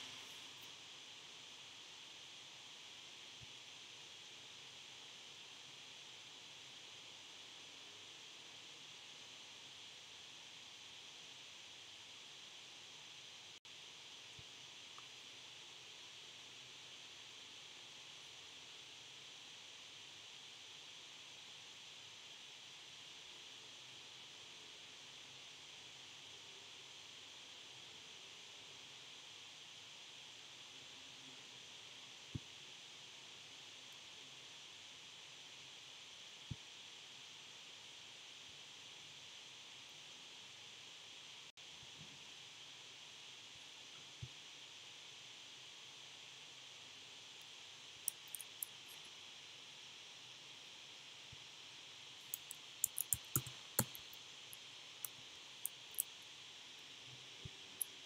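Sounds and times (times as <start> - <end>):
faint steady hiss: 0.0 - 58.0
computer mouse clicks: 48.1 - 49.0, 52.3 - 54.2
keyboard typing: 52.3 - 54.0.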